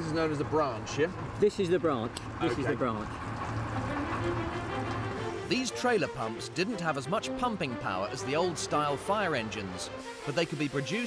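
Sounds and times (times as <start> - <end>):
pump engine idling: 0.0 - 9.2
faint background music: 2.4 - 11.0.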